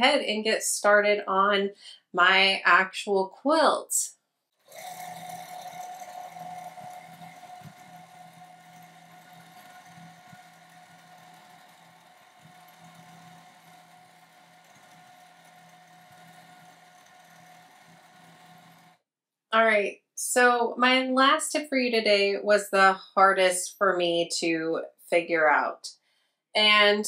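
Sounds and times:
sewing machine running: 0:04.6 - 0:19.0.

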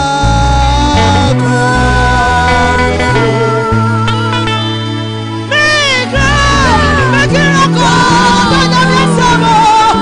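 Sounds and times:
woman singing gospel: 0:00.0 - 0:04.7, 0:05.5 - 0:10.0.

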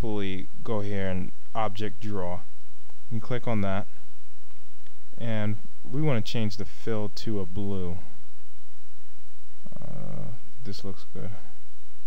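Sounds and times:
man speaking: 0:00.0 - 0:02.5, 0:03.1 - 0:04.0, 0:05.2 - 0:08.2, 0:09.6 - 0:11.6
faint background hiss: 0:00.0 - 0:12.0
low electrical hum: 0:00.0 - 0:12.0.

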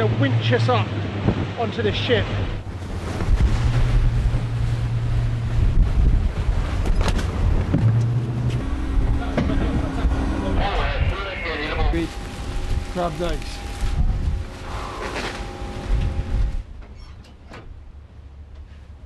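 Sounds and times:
winch motor hum: 0:02.6 - 0:16.7.

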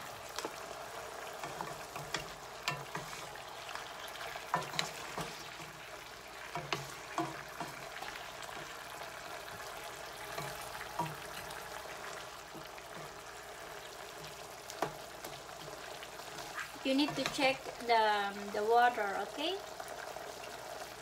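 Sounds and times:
chicken sizzling in a skillet: 0:00.0 - 0:21.0
wooden spatula scraping a pan: 0:00.4 - 0:08.8, 0:09.4 - 0:17.6.

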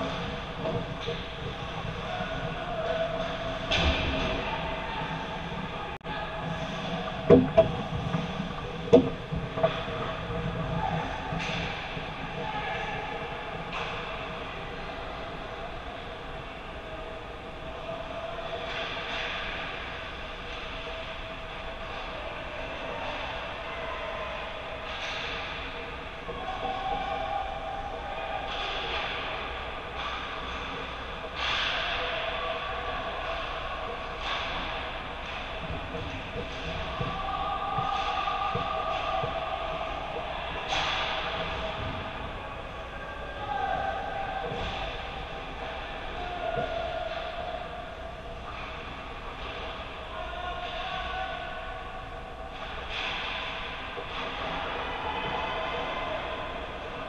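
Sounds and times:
arena rumble: 0:00.0 - 0:21.4
distant players shouting: 0:36.5 - 0:48.1.

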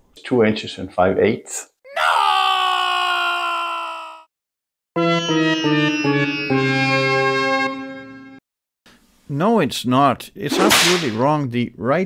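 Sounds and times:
person shouting no: 0:01.8 - 0:04.3.

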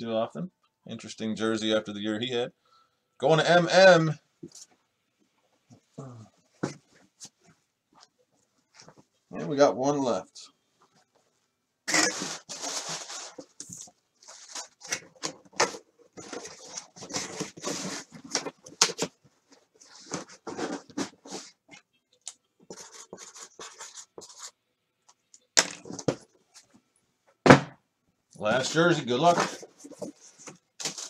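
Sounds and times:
cardboard packaging rustling: 0:11.9 - 0:21.6, 0:28.6 - 0:31.0.

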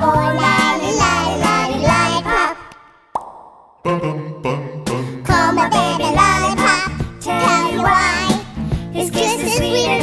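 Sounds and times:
children's choir singing: 0:00.0 - 0:02.7, 0:05.3 - 0:08.4
cheek pop: 0:02.7 - 0:03.8.

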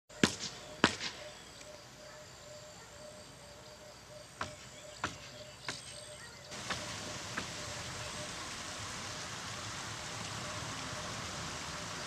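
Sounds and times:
faint outdoor background: 0:00.1 - 0:12.0.

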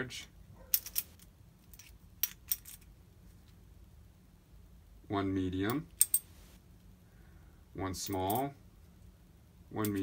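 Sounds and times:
metal washers clinking: 0:00.6 - 0:03.0, 0:05.6 - 0:06.6, 0:08.0 - 0:08.6, 0:09.7 - 0:10.0.

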